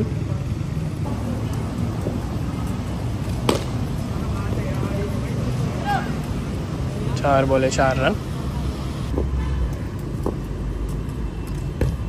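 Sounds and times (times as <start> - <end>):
low rumble of background noise: 0.0 - 12.0
cricket bat striking ball: 3.4 - 3.8.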